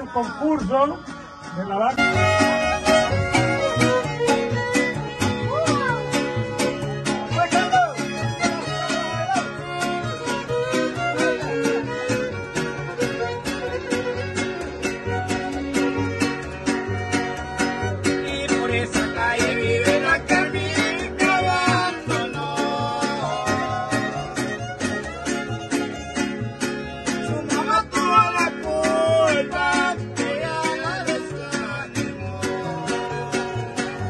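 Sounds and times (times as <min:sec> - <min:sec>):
plucked bass line: 0:00.0 - 0:34.0
strummed guitars: 0:00.0 - 0:34.0
violins playing melody: 0:02.0 - 0:18.2, 0:23.2 - 0:27.5.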